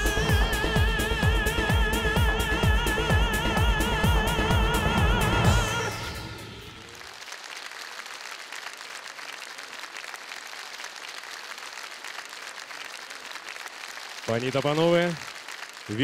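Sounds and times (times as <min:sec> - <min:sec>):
song ending: 0:00.0 - 0:06.9
audience applauding: 0:05.4 - 0:16.0.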